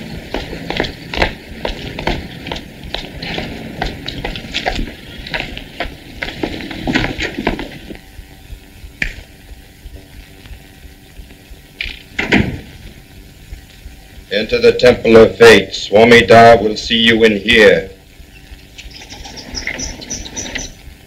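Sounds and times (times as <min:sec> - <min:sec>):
footsteps on pavement: 0:00.0 - 0:08.0
faint steady hum: 0:00.0 - 0:21.0
old film soundtrack hiss: 0:00.0 - 0:21.0
loud thud: 0:12.2 - 0:12.7.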